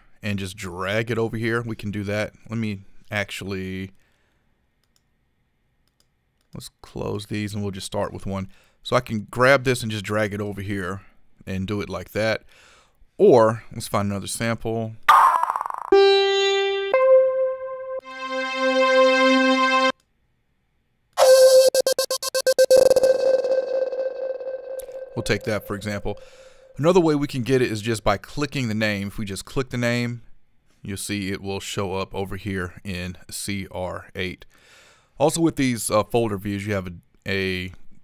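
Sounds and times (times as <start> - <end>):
stuttering flute tone: 15.9 - 19.9, 21.2 - 26.8.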